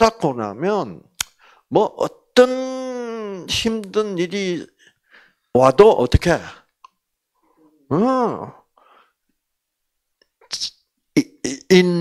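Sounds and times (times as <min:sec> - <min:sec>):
burst of breath into microphone: 0:01.4 - 0:01.7.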